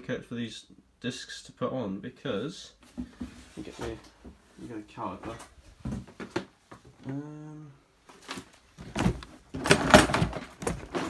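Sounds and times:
rummaging rustling and clattering: 8.1s - 11.0s.

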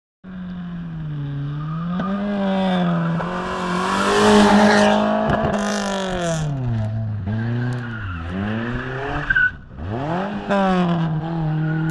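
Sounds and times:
rally car engine revving past: 1.3s - 9.2s.

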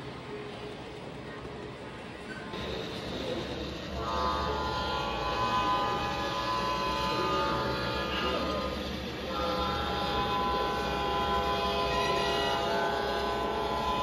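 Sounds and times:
multi-note horn blast: 4.0s - 14.0s.

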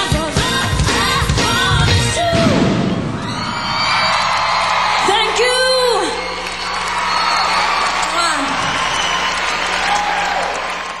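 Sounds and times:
large audience applauding: 3.2s - 11.0s.

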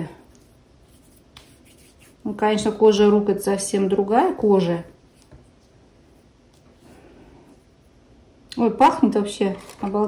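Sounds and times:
fingers rubbing cream on skin: 0.3s - 2.3s.

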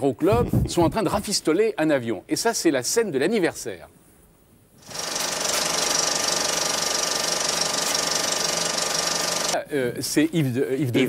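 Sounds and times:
rapid mechanical rattle: 4.8s - 9.6s.

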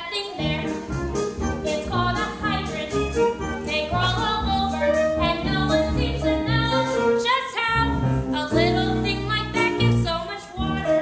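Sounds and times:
girl singing: 0.0s - 0.8s, 1.6s - 3.1s, 3.7s - 11.0s
instrumental accompaniment: 0.1s - 11.0s.

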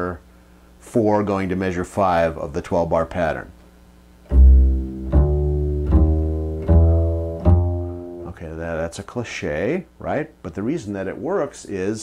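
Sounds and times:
double bass plucked notes: 4.2s - 8.5s.

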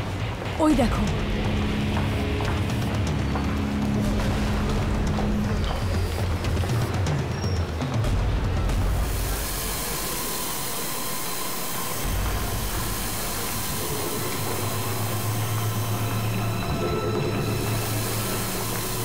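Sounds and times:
train rumble and hiss: 0.0s - 19.0s
low hum: 11.8s - 19.0s.

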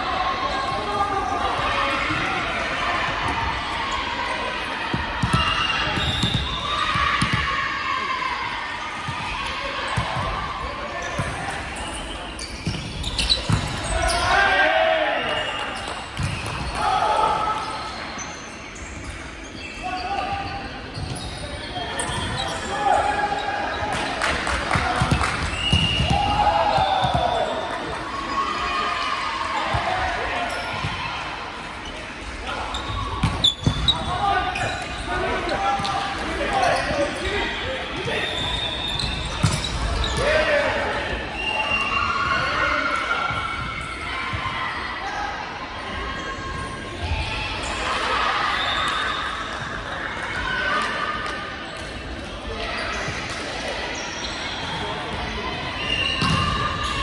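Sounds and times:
players calling and chatting: 0.0s - 49.2s
volleyball bouncing on court: 4.9s - 7.6s, 10.0s - 10.4s, 11.1s - 11.5s, 12.6s - 14.0s, 15.8s - 16.8s, 24.7s - 27.5s, 32.8s - 35.0s, 38.0s - 40.4s, 56.2s - 57.0s.

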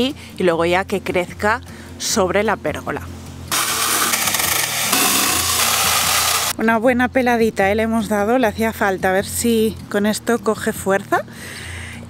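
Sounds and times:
chainsaw cutting branch: 3.5s - 6.6s.

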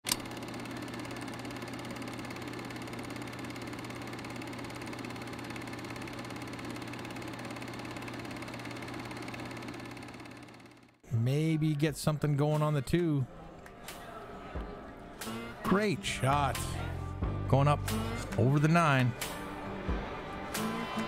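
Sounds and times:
film projector clattering: 0.0s - 11.0s.

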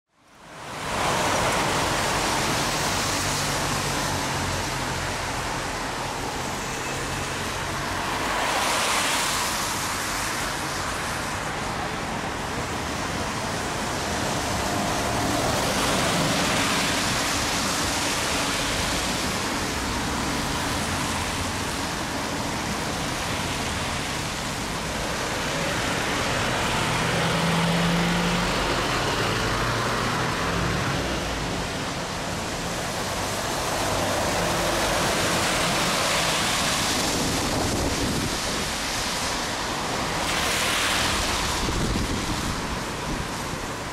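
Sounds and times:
road traffic passing: 0.2s - 43.9s.

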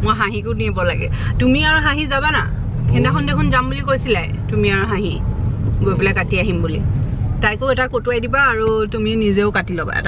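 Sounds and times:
woman speaking: 0.0s - 5.2s, 5.8s - 10.0s
car interior rumble: 0.0s - 10.0s.

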